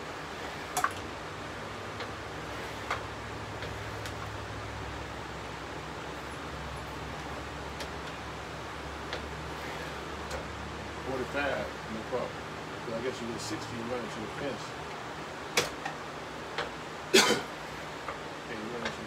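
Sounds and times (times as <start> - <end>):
low steady hum: 0.0 - 19.0.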